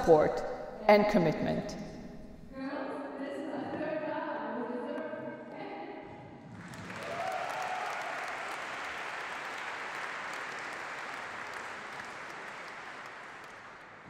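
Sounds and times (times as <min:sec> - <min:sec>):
audience applauding: 0:06.4 - 0:14.0.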